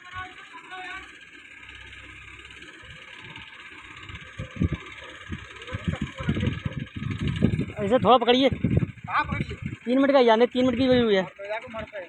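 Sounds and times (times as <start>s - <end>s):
crane diesel engine running: 0.0s - 12.0s.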